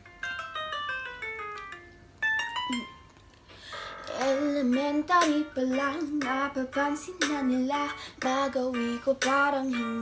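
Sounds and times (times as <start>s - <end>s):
plucked instrumental melody: 0.0s - 10.0s.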